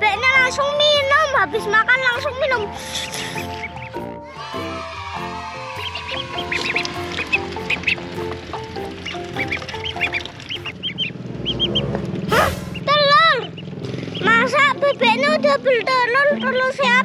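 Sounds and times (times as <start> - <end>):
background music with held notes: 0.0 - 12.7, 13.7 - 17.0
ducklings peeping: 0.2 - 4.2, 5.7 - 17.0.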